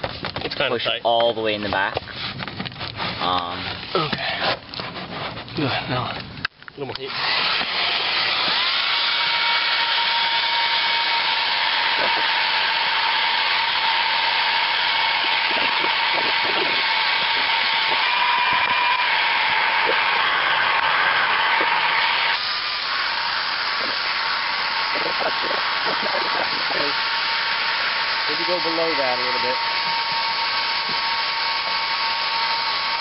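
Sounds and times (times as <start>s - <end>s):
hair dryers blowing: 6.9s - 33.0s.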